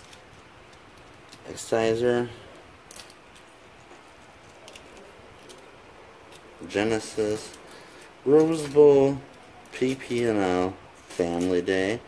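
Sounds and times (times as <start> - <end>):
low steady hiss: 0.0 - 12.0
plastic pens clicking: 4.4 - 5.7.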